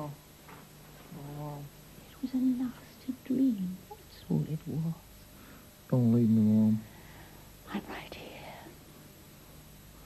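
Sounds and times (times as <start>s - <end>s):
faint low hum: 0.0s - 10.0s
woman whispering: 7.7s - 8.8s.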